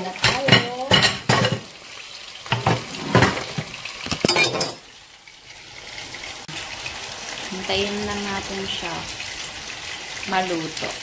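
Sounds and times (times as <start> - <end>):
utensils clacking against pan: 0.0 - 1.8, 2.4 - 4.9
meat sizzling in oil: 0.0 - 11.0.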